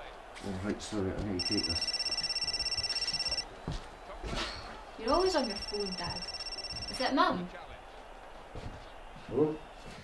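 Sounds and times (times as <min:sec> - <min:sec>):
phone ringtone pulsing: 0:01.4 - 0:03.5, 0:05.1 - 0:07.2.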